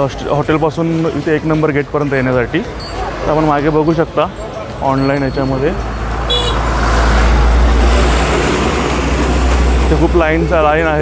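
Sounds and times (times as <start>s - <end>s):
traffic rush: 0.0s - 11.0s.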